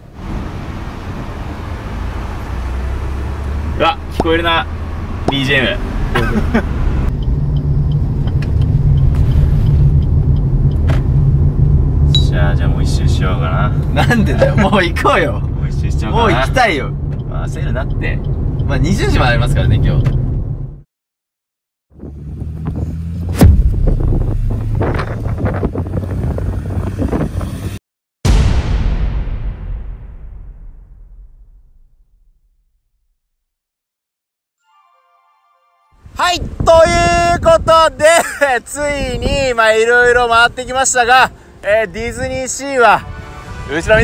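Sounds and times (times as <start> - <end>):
car engine and tyres rumble: 0.0 - 20.8, 21.9 - 27.8, 36.1 - 44.0
wind buffeting microphone: 23.6 - 27.8, 36.0 - 38.1, 38.7 - 40.6.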